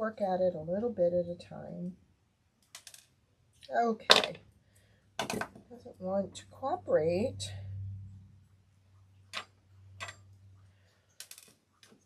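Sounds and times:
low steady hum: 0:00.0 - 0:02.6, 0:03.2 - 0:12.0
pliers clicking on metal ring: 0:09.4 - 0:10.2.

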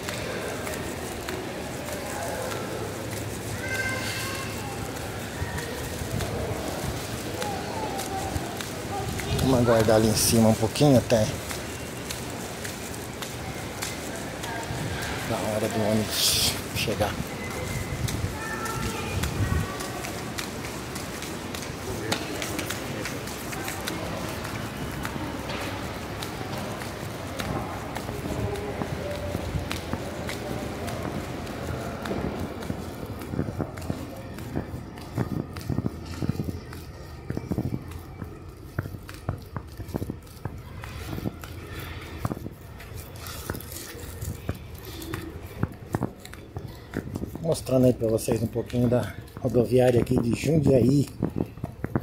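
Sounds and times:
footsteps on stone floor: 0:00.0 - 0:52.0
indistinct distant voices: 0:00.0 - 0:52.0.

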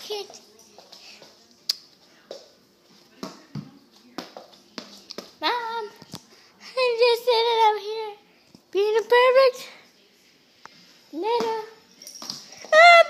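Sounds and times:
ball bouncing on hardwood floor: 0:02.3 - 0:05.4, 0:11.4 - 0:12.8.

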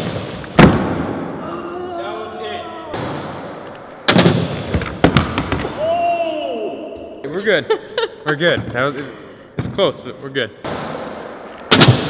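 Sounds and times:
person exclaiming oh: 0:01.4 - 0:03.0, 0:05.7 - 0:07.0.

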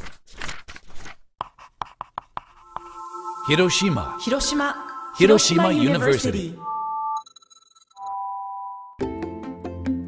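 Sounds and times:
electronic tone chord: 0:02.6 - 0:07.2.

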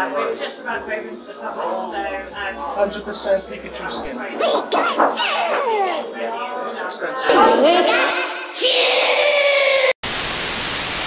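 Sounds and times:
tv static white noise: 0:10.0 - 0:11.0.

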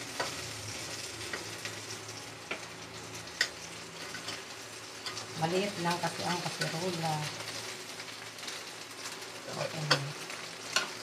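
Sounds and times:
fish sizzling in hot oil: 0:00.0 - 0:11.0.

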